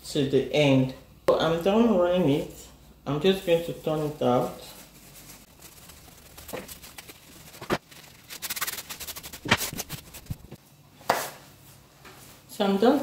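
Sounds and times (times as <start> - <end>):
fabric rustling and scrunching: 4.4 - 10.6
fabric snaps: 9.4 - 10.2.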